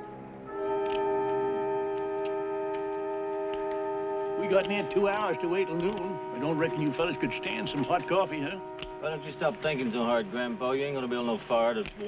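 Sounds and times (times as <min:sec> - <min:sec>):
held orchestral chord: 0:00.0 - 0:12.0.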